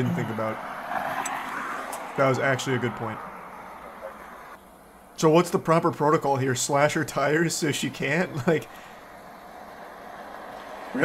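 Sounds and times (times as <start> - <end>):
vehicle idling: 2.0 - 11.0.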